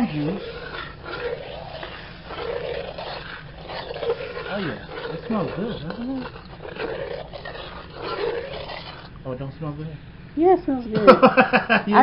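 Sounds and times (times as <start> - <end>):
wine boiling and sizzling in wok: 0.0 - 9.8
spatula stirring: 0.0 - 9.9.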